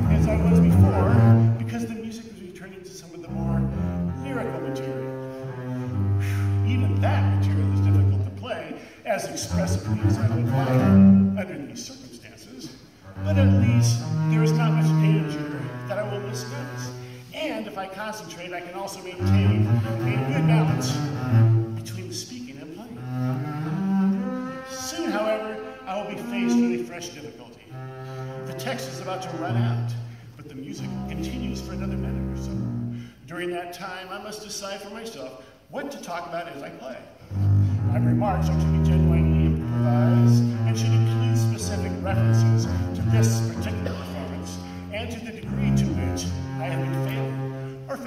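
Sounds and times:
bowed double bass: 0.0s - 33.3s, 37.1s - 48.0s.

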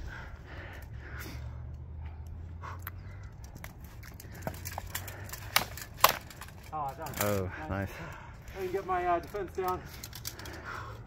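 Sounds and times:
swords clashing: 4.6s - 6.6s.

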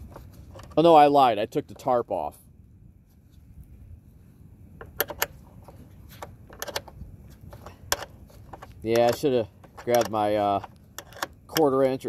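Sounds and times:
low rumble of wind: 0.0s - 12.0s
wrench metal clicks and clinks: 6.5s - 6.9s, 7.6s - 11.8s.

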